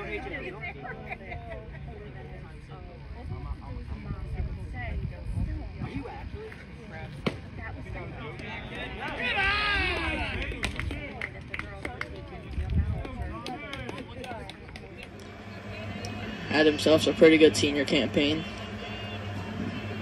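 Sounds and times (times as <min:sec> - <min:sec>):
overlapping voices: 0:08.4 - 0:20.0.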